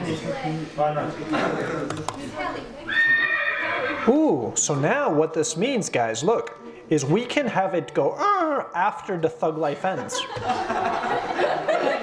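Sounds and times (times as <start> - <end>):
horse whinny: 2.9 - 4.1.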